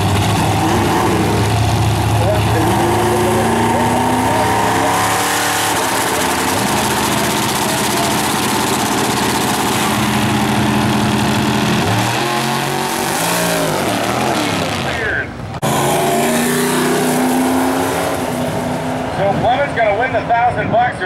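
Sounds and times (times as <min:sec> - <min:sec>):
race car engines revving: 0:00.0 - 0:21.0.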